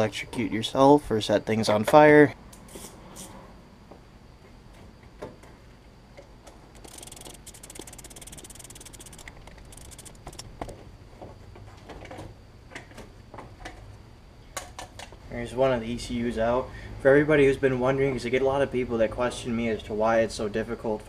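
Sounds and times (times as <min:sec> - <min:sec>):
rapid fine ticking: 0:06.8 - 0:10.8.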